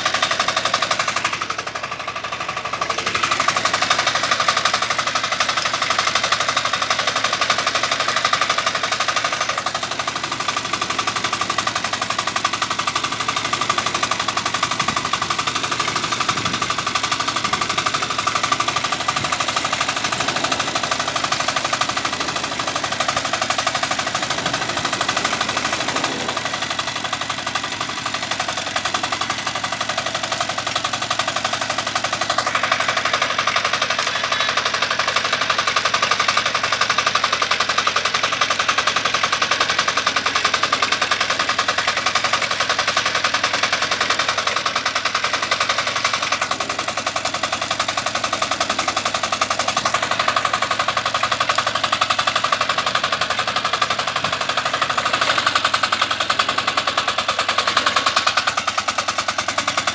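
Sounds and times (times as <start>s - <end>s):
walking tractor engine running: 0.0s - 59.9s.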